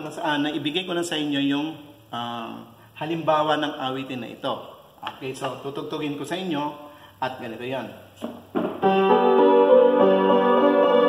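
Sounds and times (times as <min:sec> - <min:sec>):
upright piano melody over chords: 0:08.6 - 0:11.0.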